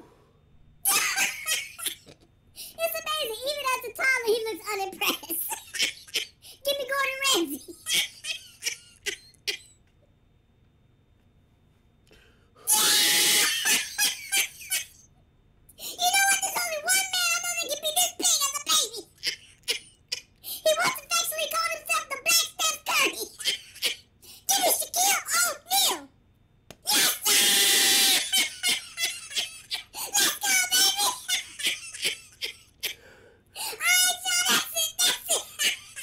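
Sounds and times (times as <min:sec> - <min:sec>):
person screaming: 0:12.6 - 0:13.7, 0:26.9 - 0:28.4.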